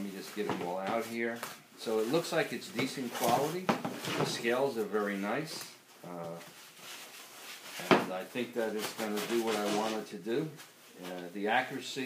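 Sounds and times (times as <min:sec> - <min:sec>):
plastic wrapping rustling: 0:00.1 - 0:12.0.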